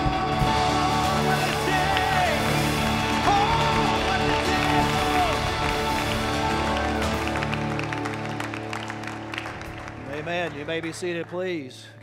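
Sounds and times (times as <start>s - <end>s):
person singing: 0.0s - 7.8s
live worship band: 0.0s - 12.0s
people clapping: 0.0s - 12.0s.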